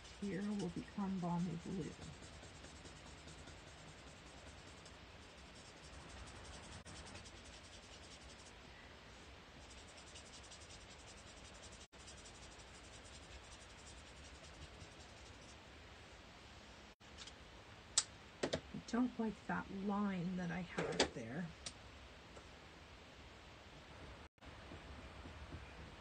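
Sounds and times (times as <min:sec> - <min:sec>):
nib scratching on paper: 0:00.0 - 0:08.5, 0:09.6 - 0:15.5.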